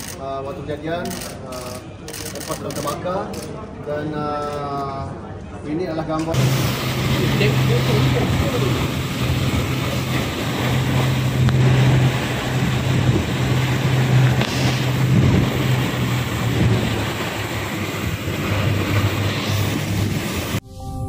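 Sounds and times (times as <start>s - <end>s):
boat engine droning: 6.4s - 20.6s
wind buffeting microphone: 6.4s - 20.6s.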